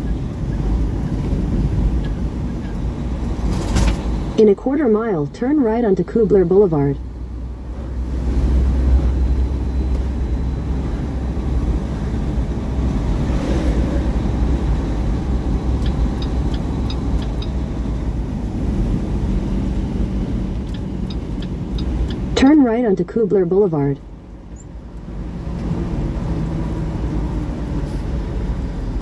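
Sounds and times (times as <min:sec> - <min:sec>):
truck engine and road rumble: 0:00.0 - 0:29.0.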